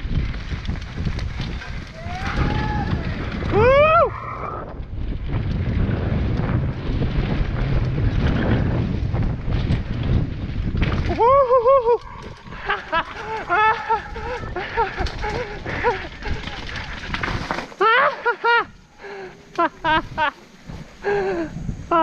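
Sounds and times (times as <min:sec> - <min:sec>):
wind on microphone: 0:00.0 - 0:17.5, 0:19.7 - 0:22.0
bike tyres rumbling on dirt: 0:00.0 - 0:22.0
rider whooping: 0:01.4 - 0:04.8, 0:11.0 - 0:20.4.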